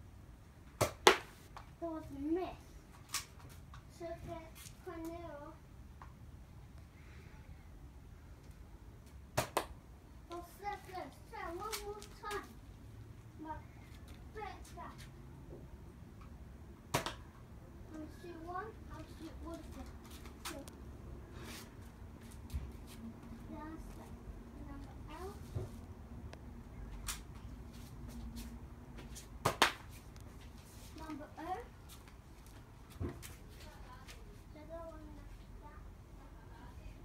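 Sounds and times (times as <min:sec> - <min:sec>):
child's voice: 0:01.8 - 0:02.8, 0:03.9 - 0:05.6, 0:10.3 - 0:12.6, 0:13.4 - 0:15.1, 0:17.9 - 0:20.8, 0:23.2 - 0:25.7, 0:30.9 - 0:31.7, 0:33.5 - 0:37.0.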